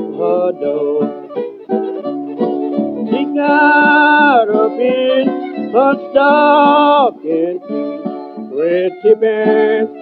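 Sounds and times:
person singing: 0.0 - 1.6, 2.9 - 10.0
acoustic blues guitar picking: 0.0 - 10.0.

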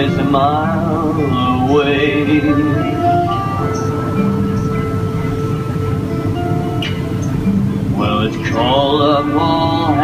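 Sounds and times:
folk band playing: 0.0 - 10.0.

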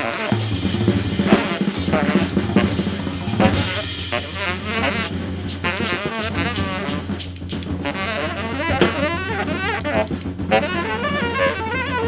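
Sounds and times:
busy jazz drum kit: 0.0 - 12.0
jazz ensemble: 0.0 - 12.0.

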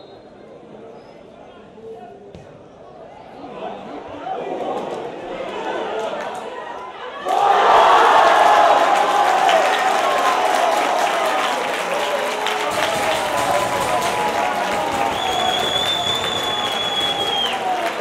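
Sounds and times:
crowd cheering and applauding: 7.2 - 18.0
long high whistle: 15.0 - 17.8.

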